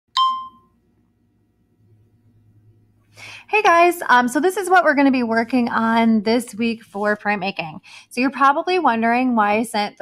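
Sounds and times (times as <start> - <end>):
bright ding: 0.1 - 0.8
faint low hum: 0.4 - 9.9.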